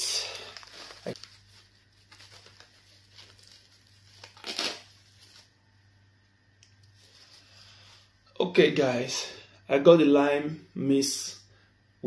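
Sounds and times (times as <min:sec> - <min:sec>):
plastic wrap crinkling: 0:00.0 - 0:05.6.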